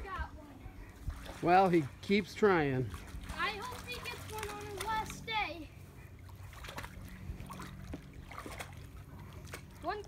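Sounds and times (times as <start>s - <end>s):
steady low hum: 0.0s - 10.0s
dog splashing in shallow water: 1.0s - 5.4s, 6.2s - 10.0s.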